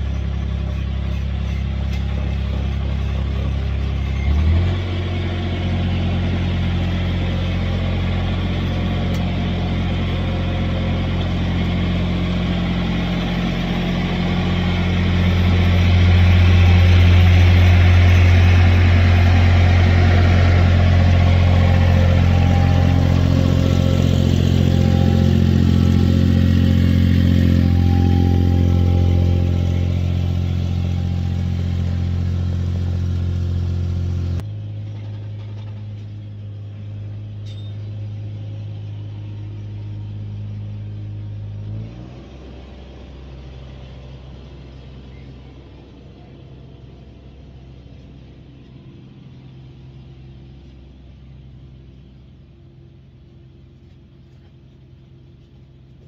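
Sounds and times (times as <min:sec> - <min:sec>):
small loader engine running: 0:00.0 - 0:56.0.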